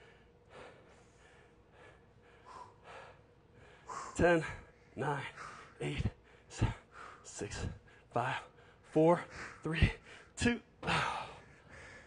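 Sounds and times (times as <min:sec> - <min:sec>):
person breathing hard: 0:00.0 - 0:12.0.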